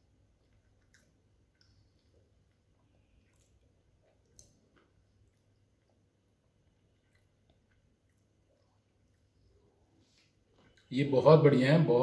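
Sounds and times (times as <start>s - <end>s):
faint chewing: 0.0s - 10.9s.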